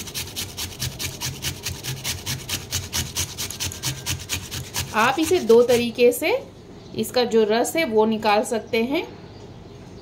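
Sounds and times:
potato grated on metal grater: 0.0 - 6.2.

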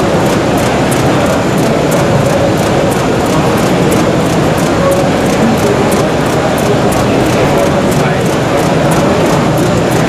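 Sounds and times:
label press machine running: 0.0 - 10.0
light machine ticking: 0.0 - 10.0.

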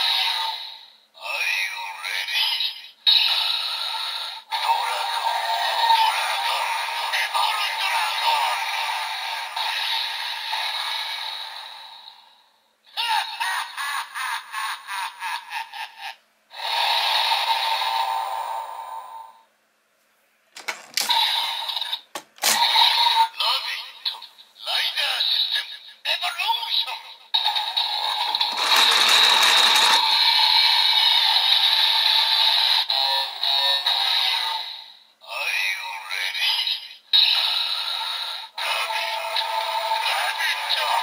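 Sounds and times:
toy electronic voice callouts: 0.0 - 0.6, 1.2 - 3.5, 4.1 - 11.1, 20.6 - 30.3, 32.9 - 41.0
plastic clicks: 20.6 - 21.2, 22.0 - 22.6
tinny toy music: 27.4 - 30.5.

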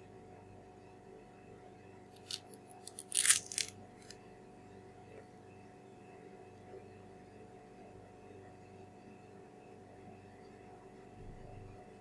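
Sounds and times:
banana stem clicks: 2.2 - 3.7
banana peel tearing: 2.2 - 4.1.

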